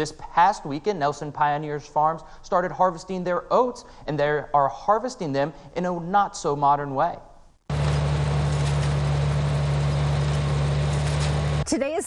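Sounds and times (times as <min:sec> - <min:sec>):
tractor engine running: 0:07.7 - 0:12.0.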